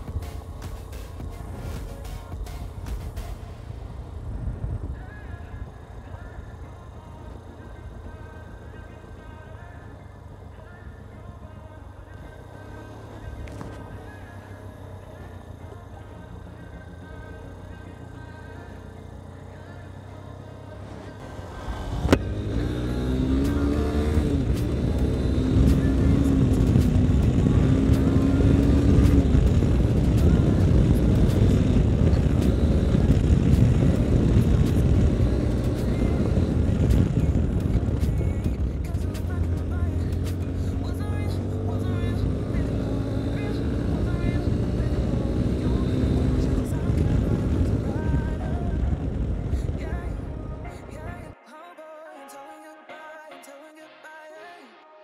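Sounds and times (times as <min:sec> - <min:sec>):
motorcycle engine accelerating: 0:00.0 - 0:50.8.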